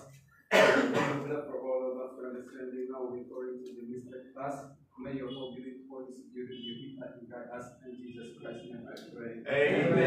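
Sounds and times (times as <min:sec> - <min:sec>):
man's voiced sound: 0:00.0 - 0:10.0
man clearing throat: 0:00.5 - 0:01.4.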